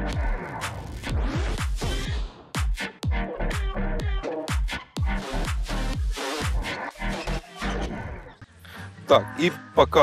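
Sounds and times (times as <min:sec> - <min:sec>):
electronic dance music: 0:00.0 - 0:08.4.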